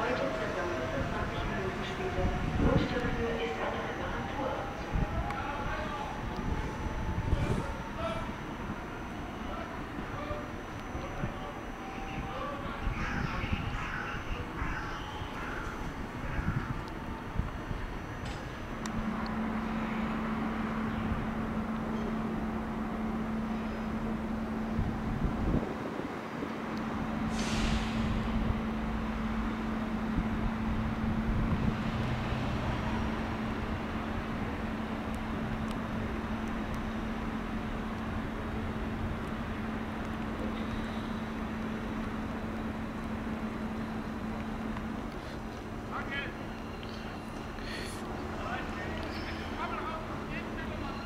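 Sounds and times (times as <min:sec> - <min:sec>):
steady electric hum of trains: 0:00.0 - 0:51.0
compressed-air hiss: 0:27.3 - 0:28.2.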